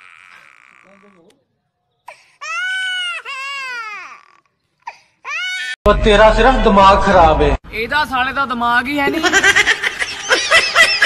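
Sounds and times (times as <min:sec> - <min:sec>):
shrill high-pitched crying wail: 0:02.4 - 0:04.5, 0:05.2 - 0:05.8.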